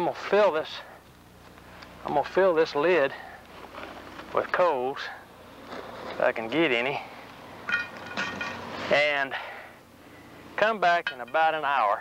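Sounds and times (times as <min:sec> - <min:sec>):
charcoal coals clinking on metal: 0:07.6 - 0:09.1, 0:10.6 - 0:12.0.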